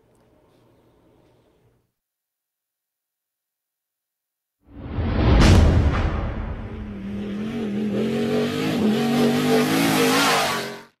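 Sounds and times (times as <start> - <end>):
engine revving: 6.5 - 11.0.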